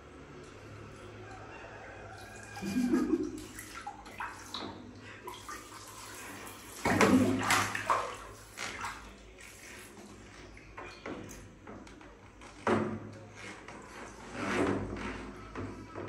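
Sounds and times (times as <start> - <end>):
water splashing in a bathtub: 0.0 - 16.0.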